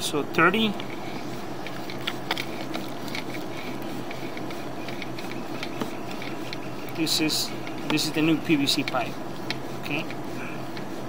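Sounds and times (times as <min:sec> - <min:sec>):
cable reel mechanical hum: 0:00.0 - 0:11.0.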